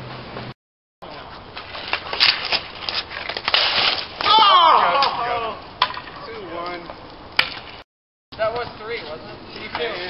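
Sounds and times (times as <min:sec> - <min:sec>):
hockey sticks and ball clacking: 0:01.1 - 0:07.8
player shouting: 0:04.2 - 0:05.6.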